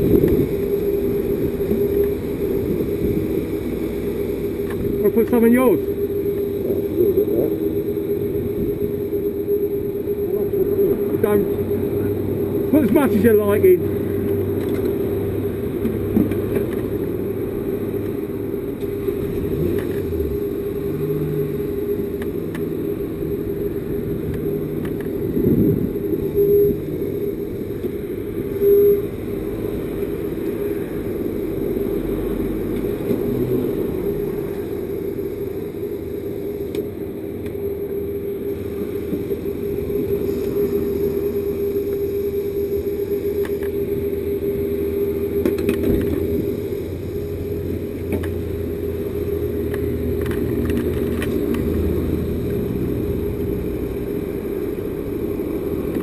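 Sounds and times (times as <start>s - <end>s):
steady machine hum: 0.0s - 56.0s.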